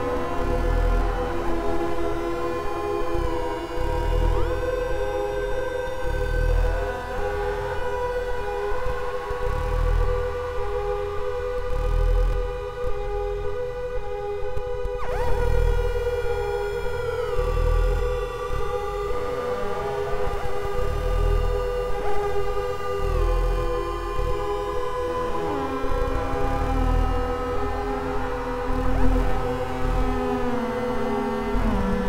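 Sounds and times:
synthesizer droning: 0.0s - 32.0s.

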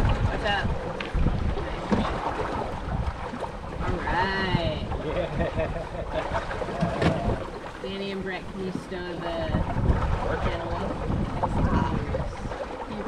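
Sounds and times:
water rushing past boat: 0.0s - 13.0s
wind buffeting microphone: 0.0s - 13.0s.

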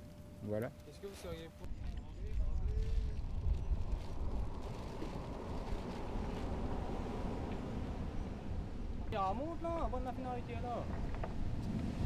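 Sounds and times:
wind buffeting microphone: 1.7s - 12.0s.

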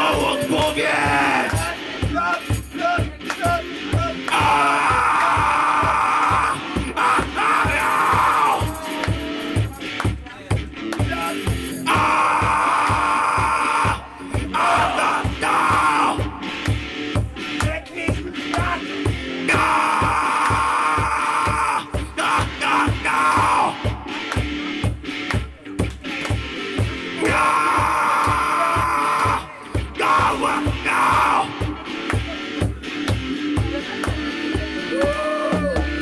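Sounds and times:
fast drum beat: 0.0s - 36.0s.

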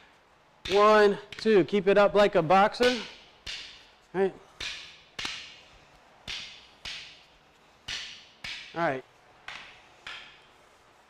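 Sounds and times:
wooden sticks clacking: 0.6s - 1.6s, 2.7s - 10.9s.

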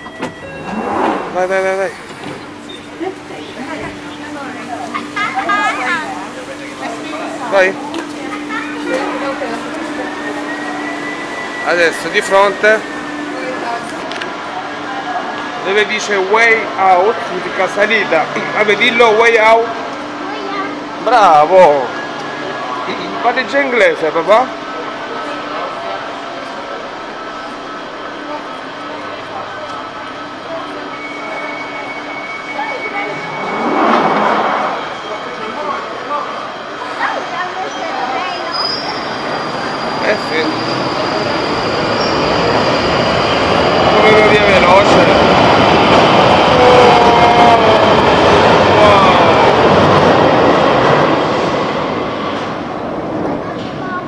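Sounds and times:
station din: 0.0s - 14.0s
train low hum: 0.0s - 54.0s.

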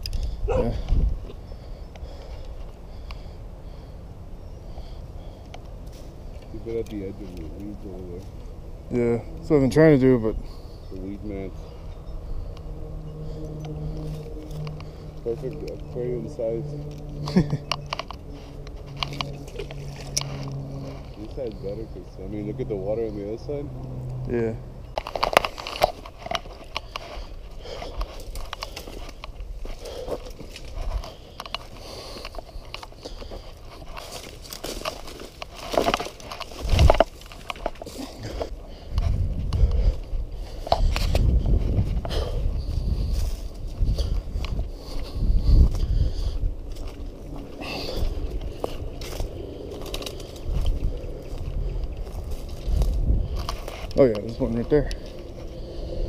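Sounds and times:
brush crackling and scraping: 4.8s - 56.0s
low rumble: 8.2s - 56.0s
footsteps crunching through dry leaves: 25.0s - 56.0s.

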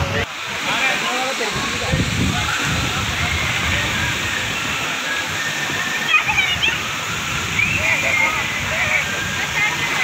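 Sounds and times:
running and splashing water: 0.0s - 10.0s.

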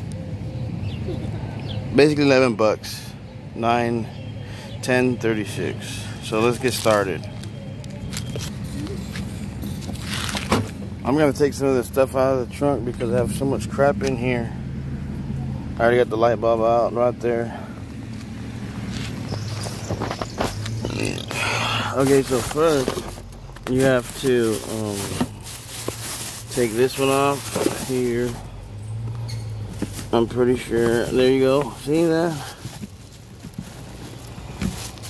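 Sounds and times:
soft handling rustles: 21.9s - 35.0s
luggage knocking and rustling: 30.8s - 35.0s.

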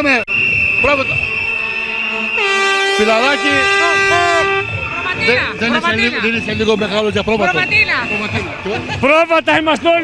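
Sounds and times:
high whistle tone: 0.0s - 5.4s
horn blowing held note: 2.4s - 4.8s.

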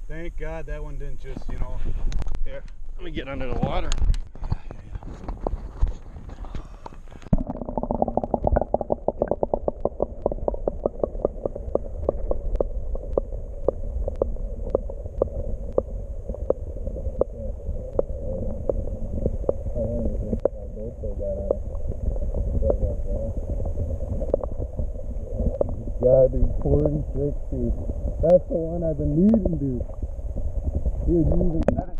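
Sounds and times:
low underwater rumble: 1.2s - 31.9s
small clicks underwater: 6.5s - 19.7s, 23.4s - 25.8s
muffled voices: 17.2s - 18.6s, 19.8s - 21.6s, 22.6s - 23.4s, 25.4s - 29.9s.

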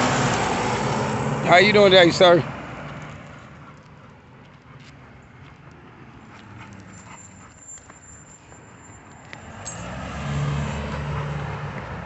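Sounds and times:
car driving past: 0.0s - 3.6s, 9.3s - 12.0s
footsteps on pavement: 2.6s - 12.0s.

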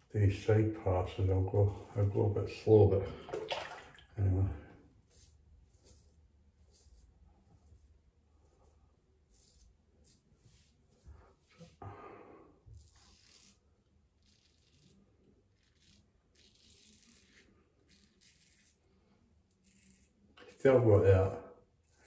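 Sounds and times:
razor scraping stubble: 14.2s - 18.8s, 19.5s - 20.6s.

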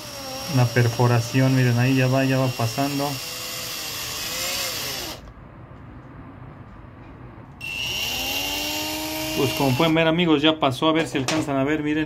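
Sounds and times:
electric drill motor whine: 0.0s - 5.3s, 7.6s - 10.0s.

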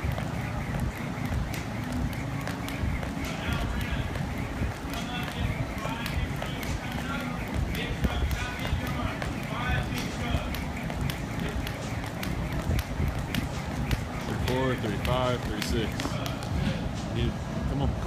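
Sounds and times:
jump rope ticking on mat: 0.0s - 16.6s.

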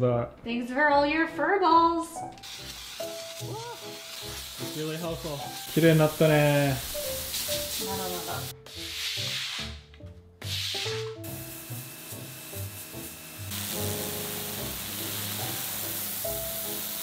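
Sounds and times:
background music: 0.0s - 17.0s
steam cleaner hissing: 2.4s - 8.9s, 10.4s - 17.0s.

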